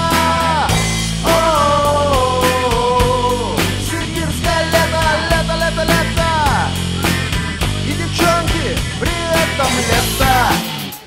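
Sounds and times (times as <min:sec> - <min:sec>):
bass: 0:00.0 - 0:11.0
drums keeping a regular beat: 0:00.0 - 0:11.0
guitar lead with bending notes: 0:00.0 - 0:11.0.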